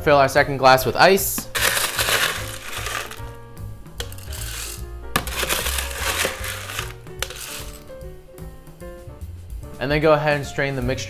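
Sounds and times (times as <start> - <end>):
background music with bass: 0.0 - 11.0
ice scoop in ice bin: 1.4 - 3.3, 4.0 - 7.8
ice cubes rattling into glass: 1.5 - 3.2, 4.2 - 7.7.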